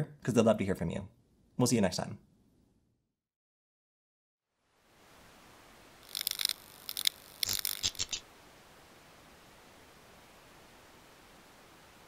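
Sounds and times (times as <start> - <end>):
static hiss: 4.6 - 12.0
crackly electronic bursts: 6.0 - 9.0.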